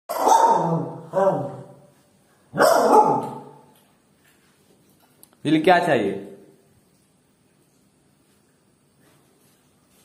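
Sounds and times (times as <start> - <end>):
small dog barking: 0.1 - 1.7, 2.5 - 3.6.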